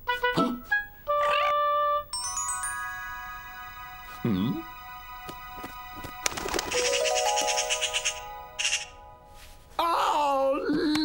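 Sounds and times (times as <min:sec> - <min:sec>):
cartoon sparkle shimmer: 0:02.2 - 0:09.3.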